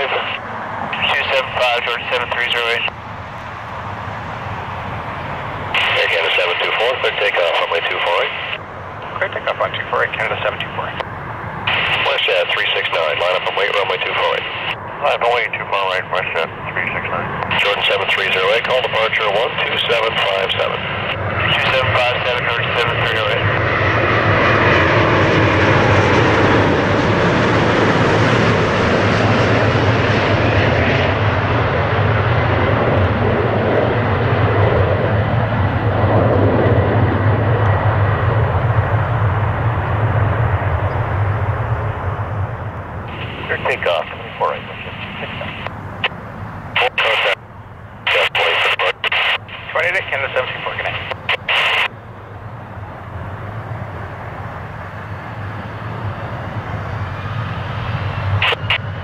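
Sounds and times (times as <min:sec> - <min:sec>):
air traffic control radio chatter: 0:00.0 - 0:03.0, 0:05.1 - 0:27.1, 0:43.0 - 0:56.7, 0:57.6 - 0:59.0
jet engines roaring: 0:00.0 - 0:59.0.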